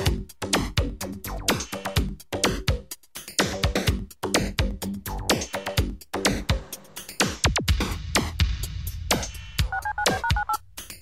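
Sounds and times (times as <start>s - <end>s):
electronic music with drum machine: 3.4s - 11.0s
touch-tone dialling beeps: 9.7s - 10.6s.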